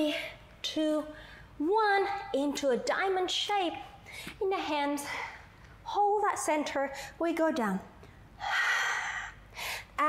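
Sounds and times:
woman breathing hard: 0:08.4 - 0:10.0.

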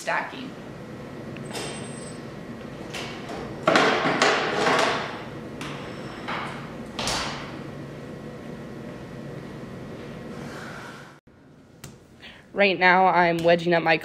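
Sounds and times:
steady room hum: 0:00.0 - 0:14.0.

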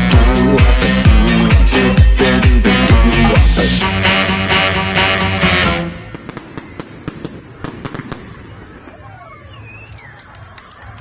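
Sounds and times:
loud music: 0:00.0 - 0:06.3
fireworks crackling and popping: 0:06.1 - 0:11.0.

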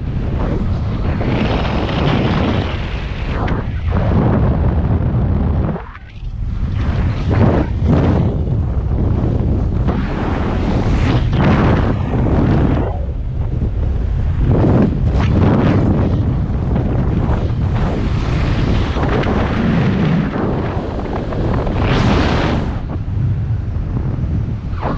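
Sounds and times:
wind buffeting microphone: 0:00.0 - 0:24.9.

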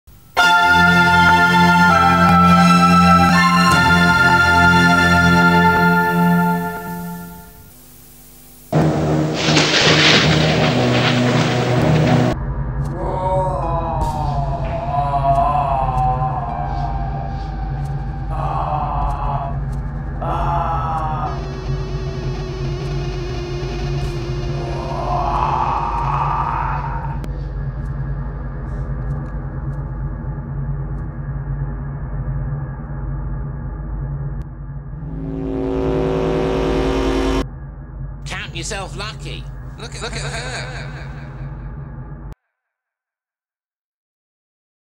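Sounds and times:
low hum: 0:00.1 - 0:42.4
electronic drone of stacked tones: 0:00.2 - 0:09.3, 0:14.9 - 0:26.2, 0:34.8 - 0:40.2
low synthesizer chord: 0:00.3 - 0:09.5, 0:14.8 - 0:20.3, 0:21.0 - 0:25.7, 0:32.8 - 0:38.2
rolling thunder: 0:08.8 - 0:12.4.

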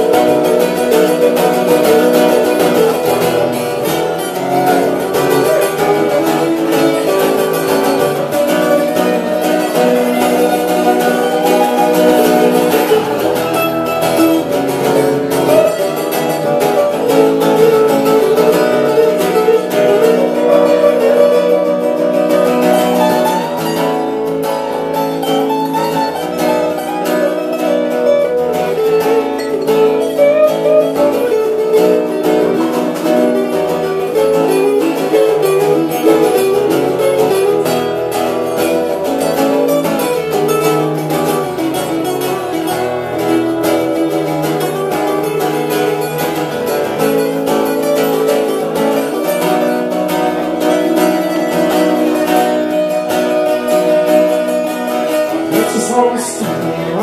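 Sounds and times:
two acoustic guitars plucked: 0:00.0 - 0:57.0.

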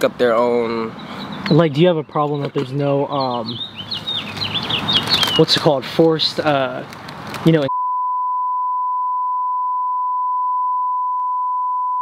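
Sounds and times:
person speaking: 0:05.3 - 0:07.7
censor bleep tone: 0:07.7 - 0:12.0.

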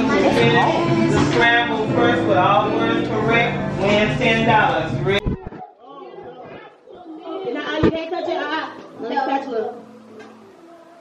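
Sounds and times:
music: 0:00.0 - 0:05.3, 0:07.7 - 0:11.0
indistinct chatter of voices: 0:00.0 - 0:11.0.

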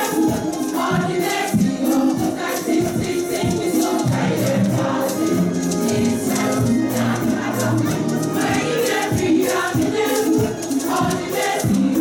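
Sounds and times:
choir singing worship song: 0:00.0 - 0:12.0.

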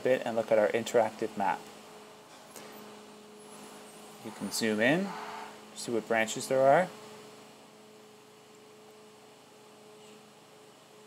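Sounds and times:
electrical hum: 0:00.0 - 0:11.0
low hiss: 0:00.0 - 0:11.0.

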